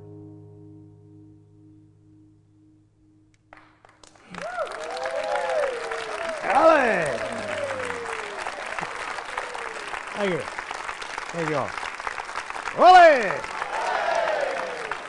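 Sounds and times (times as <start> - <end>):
flamenco guitar chord ringing: 0.0 - 3.8
audience applause: 4.0 - 15.0
people cheering and shouting: 4.3 - 10.0, 12.8 - 15.0.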